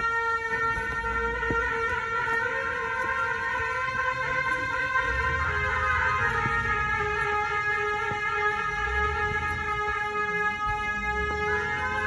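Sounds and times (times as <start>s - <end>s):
shawms holding a steady note: 0.0s - 12.0s.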